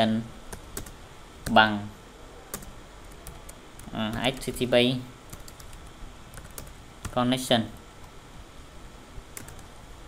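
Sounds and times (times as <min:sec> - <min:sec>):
typing on computer keyboard: 0:00.5 - 0:01.6, 0:05.3 - 0:07.2, 0:09.4 - 0:09.7.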